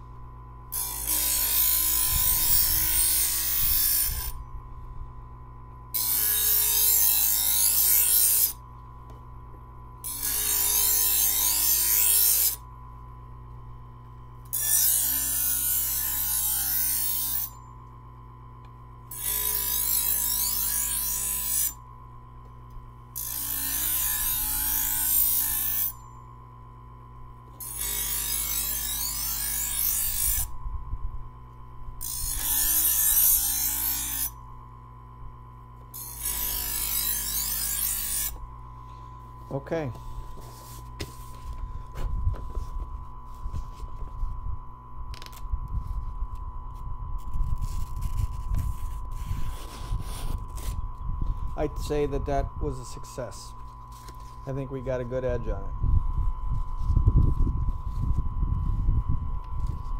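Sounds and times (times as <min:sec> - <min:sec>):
knife blade grinding: 0:00.7 - 0:04.4, 0:06.0 - 0:08.6, 0:10.0 - 0:12.6, 0:14.5 - 0:17.7, 0:19.1 - 0:21.8, 0:23.2 - 0:26.2, 0:27.6 - 0:30.5, 0:32.0 - 0:34.4, 0:35.9 - 0:38.4, 0:47.2 - 0:50.8
knife sharpener motor humming: 0:00.7 - 0:04.5, 0:05.9 - 0:08.6, 0:10.0 - 0:12.7, 0:14.4 - 0:17.7, 0:18.6 - 0:26.5, 0:27.4 - 0:30.6, 0:31.4 - 0:34.6, 0:35.7 - 0:42.0, 0:45.1 - 0:54.6.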